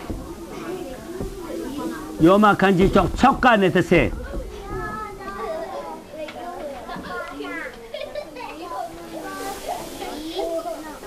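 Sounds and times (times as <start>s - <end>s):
background voices chattering: 0.0s - 11.0s.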